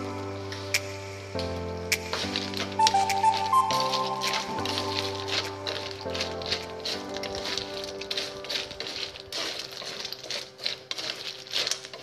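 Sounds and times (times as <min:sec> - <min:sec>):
snail shells clattering: 0:02.2 - 0:12.0
spatula scraping a metal wok: 0:03.7 - 0:12.0.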